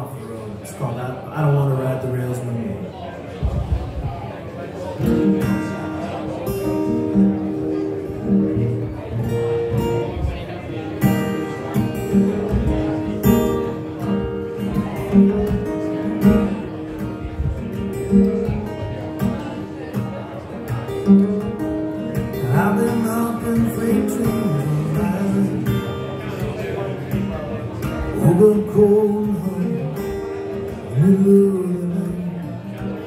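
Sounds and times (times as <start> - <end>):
acoustic guitar strumming chords: 4.9 - 33.0.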